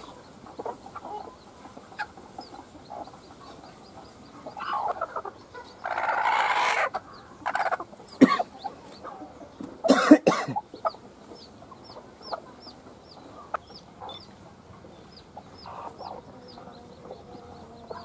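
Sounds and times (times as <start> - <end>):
hen clucking and squawking: 0.0 - 18.0.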